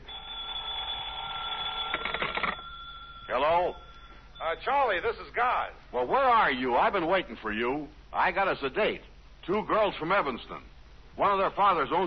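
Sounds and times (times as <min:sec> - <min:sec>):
telephone bell ringing: 0:00.0 - 0:04.7.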